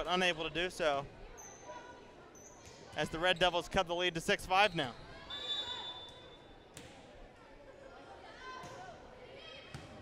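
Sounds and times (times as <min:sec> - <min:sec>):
faint chatter of people: 0:00.0 - 0:10.0.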